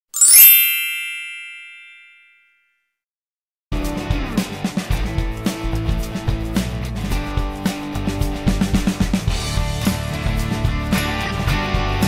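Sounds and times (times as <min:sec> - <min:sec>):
bright shimmering chime: 0:00.2 - 0:02.5.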